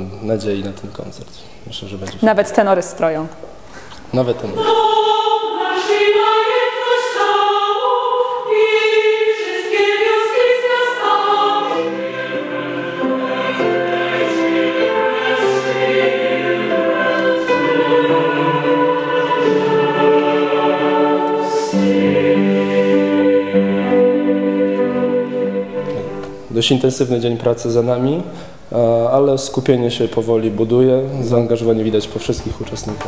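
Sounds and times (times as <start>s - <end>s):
choir singing held chords: 4.2s - 28.9s.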